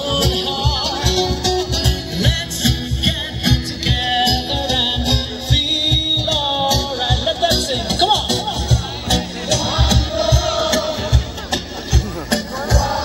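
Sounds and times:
steady drum beat: 0.0s - 13.0s.

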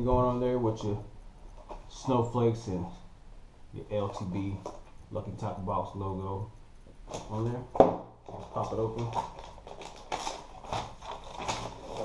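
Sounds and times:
cardboard box being opened: 8.3s - 12.0s
paper rustling: 8.3s - 12.0s.

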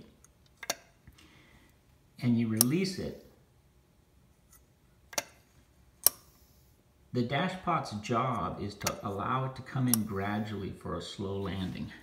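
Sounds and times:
throttle linkage clicks: 0.2s - 0.9s.

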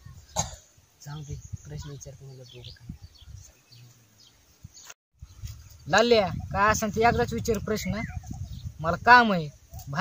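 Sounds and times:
person coughing: 0.4s - 0.7s.

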